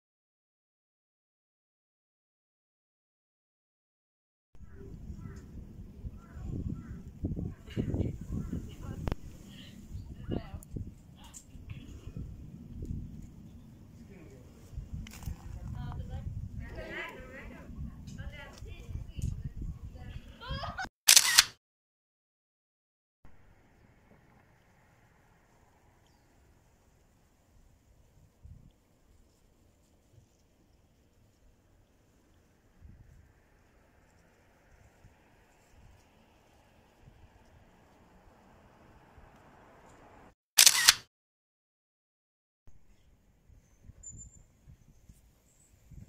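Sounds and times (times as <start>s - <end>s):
camera shutter double click: 21.1s - 21.6s, 40.6s - 41.1s.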